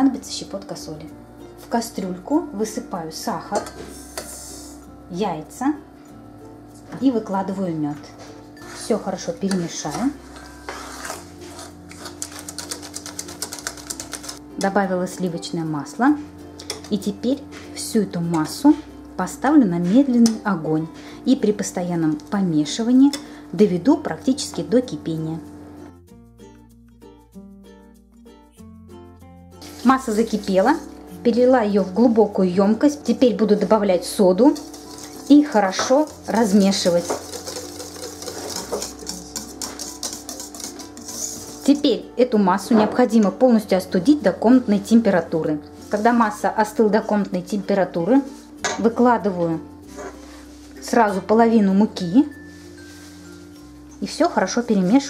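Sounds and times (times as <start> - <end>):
soft background music: 0.0 - 55.0
metal utensil whisking in a pot: 8.6 - 14.4, 29.6 - 31.0, 33.6 - 42.1.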